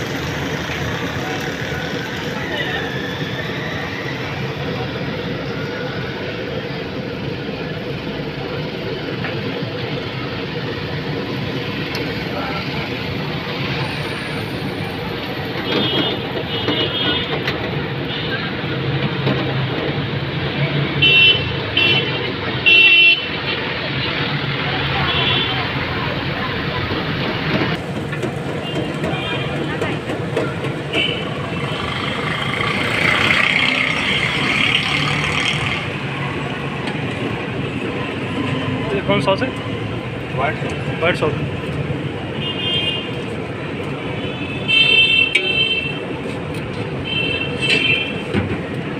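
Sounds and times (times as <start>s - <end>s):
street traffic: 0.0s - 48.9s.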